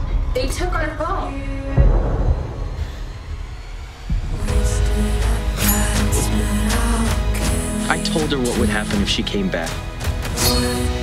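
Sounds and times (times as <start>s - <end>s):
low rumbling drone: 0.0s - 8.8s
deep low boom: 1.6s - 5.4s.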